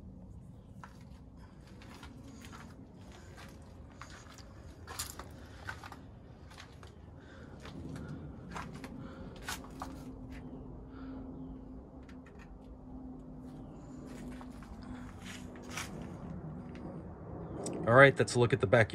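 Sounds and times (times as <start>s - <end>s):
low steady hum: 0.0s - 18.9s.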